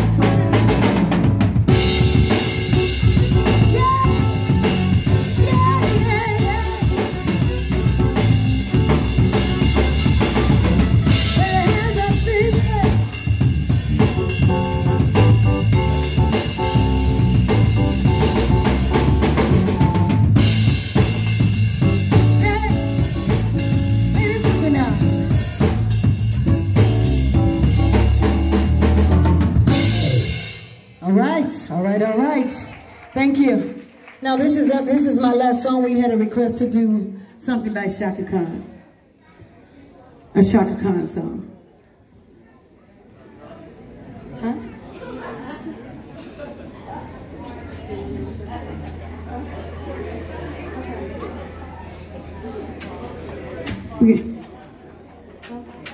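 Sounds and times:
keyboard: 0.0 - 30.9
drum kit: 0.0 - 31.6
live band playing: 0.0 - 36.7, 47.0 - 54.6.

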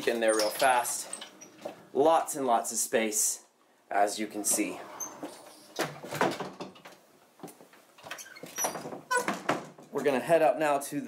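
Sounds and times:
door squeak: 0.0 - 1.8, 4.4 - 6.7, 8.0 - 9.7
bifold doors wooden clack: 8.0 - 9.9.

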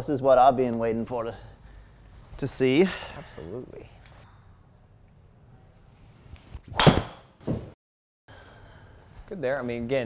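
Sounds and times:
golf club striking ball: 6.7 - 7.3
ball thumping impact screen: 6.7 - 7.7.

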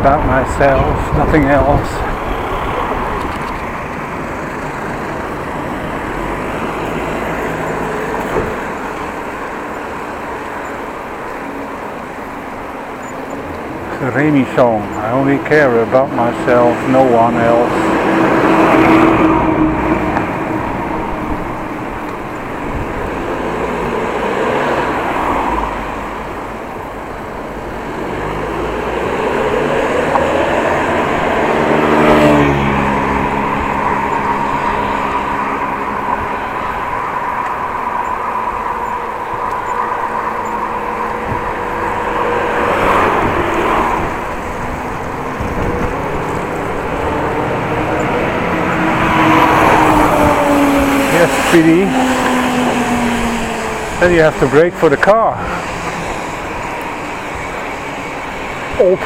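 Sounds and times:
cars and trucks passing: 0.0 - 59.0.

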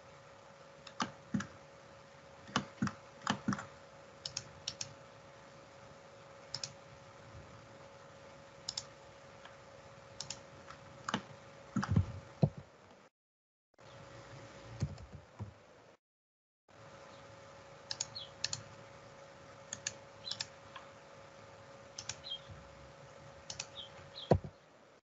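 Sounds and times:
faint steady hum: 0.0 - 13.1, 13.8 - 16.0, 16.7 - 25.0
keyboard clicks: 0.8 - 1.5, 2.4 - 5.0, 6.5 - 6.8, 8.7 - 9.6, 10.2 - 12.6, 17.9 - 18.7, 19.7 - 20.9, 22.0 - 22.5, 23.4 - 24.5
computer mouse clicks: 0.8 - 1.6, 2.4 - 5.0, 6.5 - 6.8, 8.6 - 9.6, 10.2 - 12.6, 17.9 - 18.7, 19.7 - 20.9, 22.0 - 22.5, 23.4 - 24.5.

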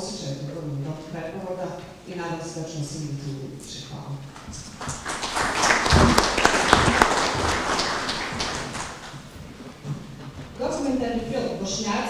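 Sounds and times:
audience applauding: 4.6 - 9.2.

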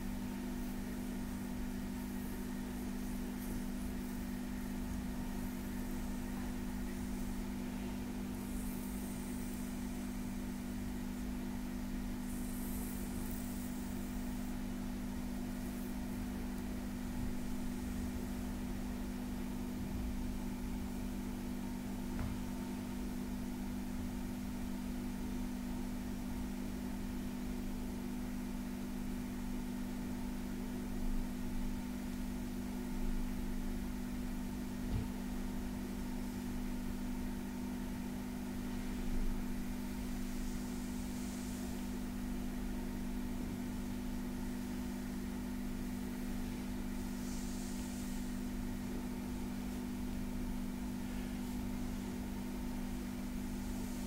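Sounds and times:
low hum and hiss: 0.0 - 54.0.

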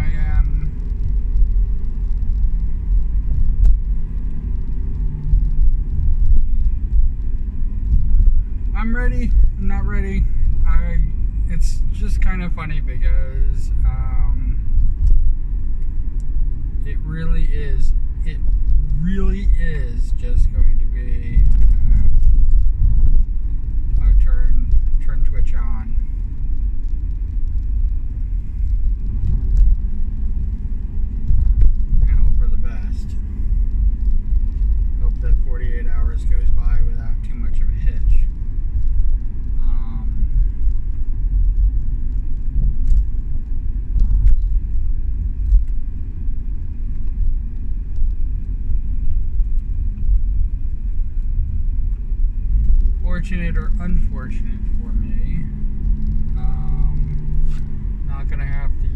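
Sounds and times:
engine and road rumble in car: 0.0 - 58.9.

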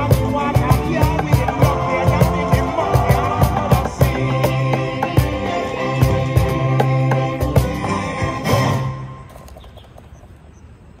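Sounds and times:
faint bird chirps: 9.4 - 10.8.

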